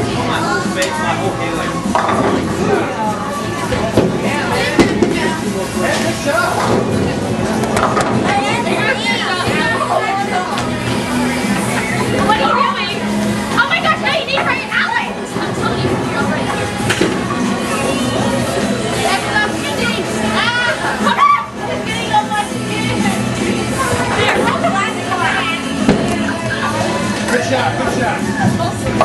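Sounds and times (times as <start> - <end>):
background music: 0.0 - 29.0
children chattering and calling out: 0.0 - 29.0
crowd voices: 0.0 - 29.0
bowling balls and pins clattering: 1.8 - 2.9, 3.6 - 12.5.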